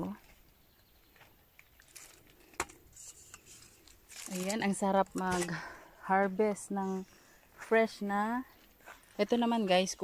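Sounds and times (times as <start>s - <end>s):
rustling plant leaves: 1.1s - 10.0s.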